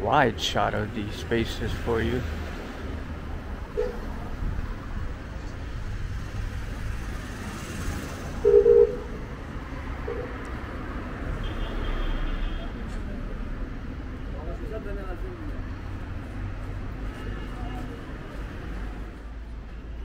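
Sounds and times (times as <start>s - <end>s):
traffic low rumble: 0.0s - 20.0s
car horn beep: 3.8s - 4.0s, 8.4s - 9.2s, 11.4s - 12.7s.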